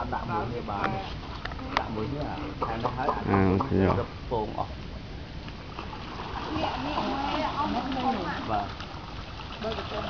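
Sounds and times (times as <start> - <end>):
water splashing and running: 5.5 - 10.0.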